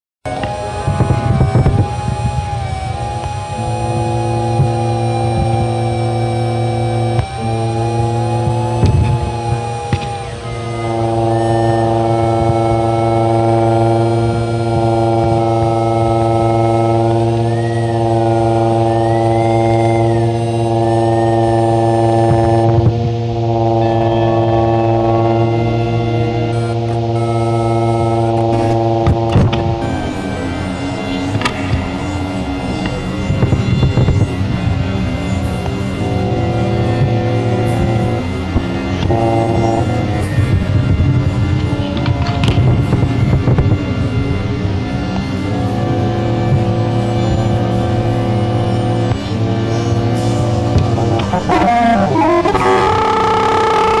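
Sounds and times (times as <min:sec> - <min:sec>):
sustained layered drone: 0:00.2 - 0:54.0
deep low hum: 0:00.3 - 0:54.0
gliding high tones: 0:00.3 - 0:54.0.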